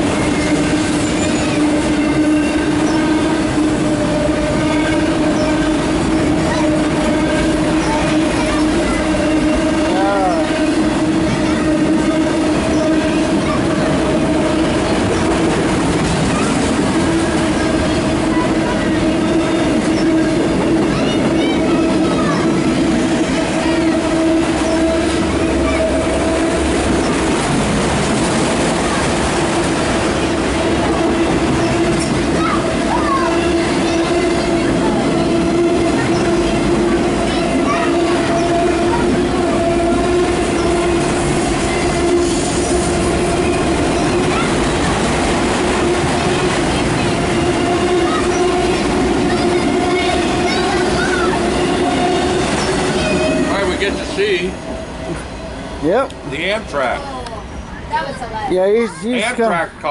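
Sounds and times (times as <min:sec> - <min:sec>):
freight car wheels rumbling on rail: 0:00.0 - 0:59.9.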